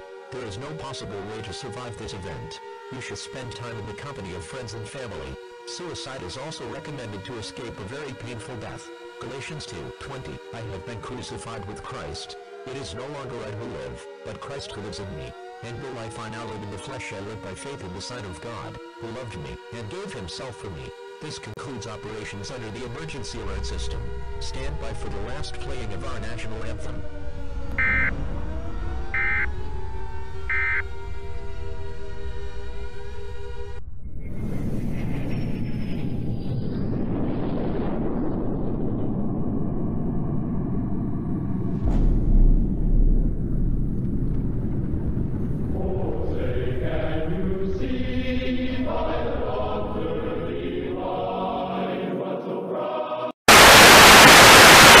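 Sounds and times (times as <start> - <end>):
sliding siren-like tones: 0.0 - 2.9, 10.8 - 17.6, 24.4 - 33.7
low rumble: 26.9 - 47.4
digital warbling data tones: 27.8 - 28.1, 29.2 - 29.5, 30.5 - 30.8
distorted choir singing anthem: 27.8 - 28.4, 45.6 - 53.9
tv static hiss: 53.5 - 55.0.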